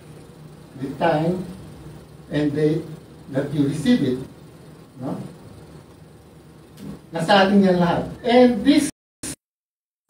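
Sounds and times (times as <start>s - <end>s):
faint low hum: 0.0s - 8.9s.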